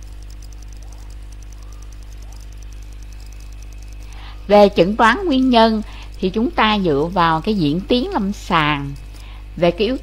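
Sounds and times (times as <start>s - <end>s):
low electrical hum: 0.0s - 10.0s.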